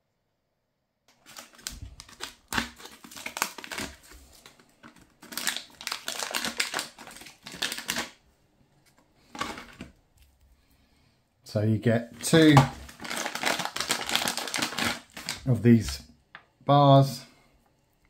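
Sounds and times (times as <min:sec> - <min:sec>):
foil pouch crinkling: 0:01.1 - 0:08.2, 0:08.9 - 0:10.4, 0:12.2 - 0:16.0.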